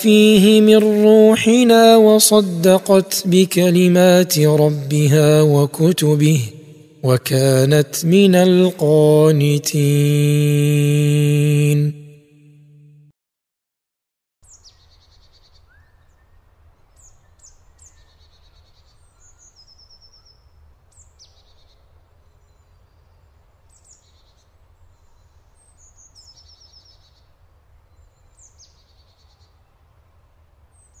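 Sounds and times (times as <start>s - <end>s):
faint birdsong chirps and trills: 14.4s - 31.0s.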